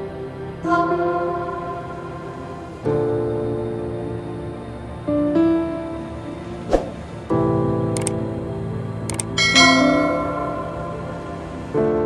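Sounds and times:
soft piano chords: 0.0s - 12.0s
quick double clicks: 8.0s - 8.2s, 9.1s - 9.3s.

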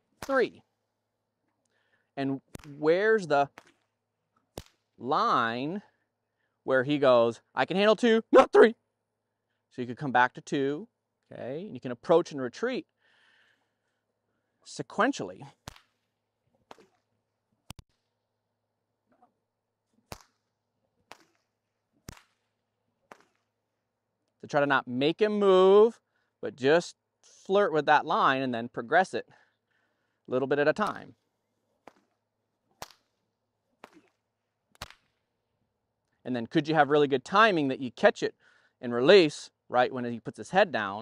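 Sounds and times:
whip cracking: 0.1s - 0.6s, 2.4s - 5.0s, 15.5s - 17.1s, 20.0s - 23.6s, 30.8s - 31.1s, 31.8s - 33.2s, 33.8s - 35.2s.

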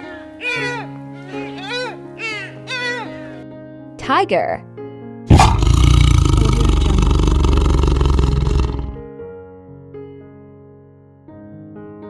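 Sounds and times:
tiger roaring: 5.3s - 9.0s.

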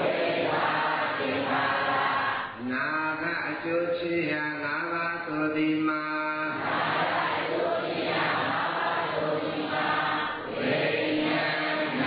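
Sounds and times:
group of voices chanting: 0.0s - 2.6s, 6.5s - 12.0s
man chanting alone: 1.1s - 6.6s, 11.1s - 12.0s.

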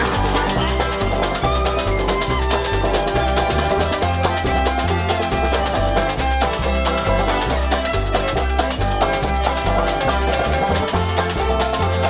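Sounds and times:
pitched strings: 0.0s - 12.0s
upright bass plucking: 0.0s - 12.0s.

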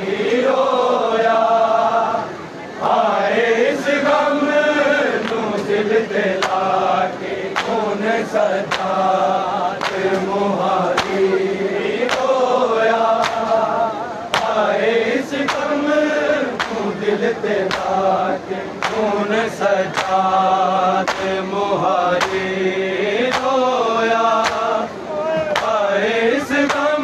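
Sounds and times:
men chanting in unison: 0.0s - 27.0s
hands slapping chests: 6.4s - 6.7s, 7.5s - 7.8s, 8.6s - 9.0s, 9.8s - 10.2s, 12.0s - 12.3s, 13.2s - 13.6s, 14.3s - 14.6s, 16.6s - 16.9s, 17.7s - 18.0s, 18.8s - 19.1s, 19.9s - 20.2s, 21.0s - 21.4s, 22.2s - 22.4s, 23.3s - 23.6s, 24.4s - 24.7s, 25.5s - 25.8s.

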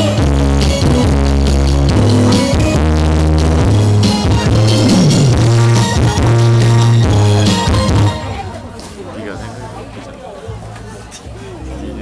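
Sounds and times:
pop backing track with bass and drums: 0.0s - 8.4s.

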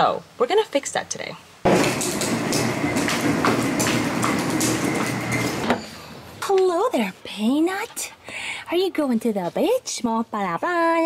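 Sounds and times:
cooler wheels rolling on concrete: 1.7s - 5.9s.

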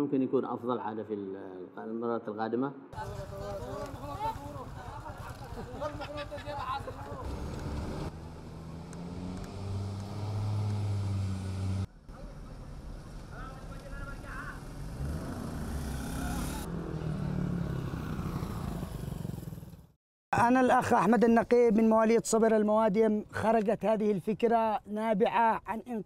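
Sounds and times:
voices: 3.0s - 7.4s
vehicle engines passing on road: 3.0s - 19.9s.

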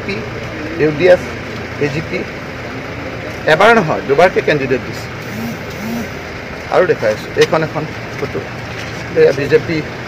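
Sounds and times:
outdoor background noise: 0.0s - 10.0s
man speaking: 6.7s - 9.9s.

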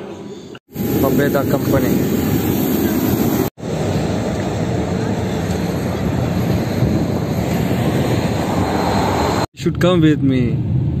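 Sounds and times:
aircraft engines rumbling: 0.1s - 9.5s
wind on microphone: 0.8s - 9.5s.

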